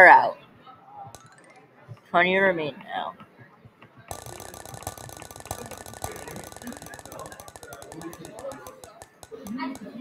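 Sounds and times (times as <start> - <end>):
spinner wheel ticking: 1.1 - 1.6, 4.1 - 10.0.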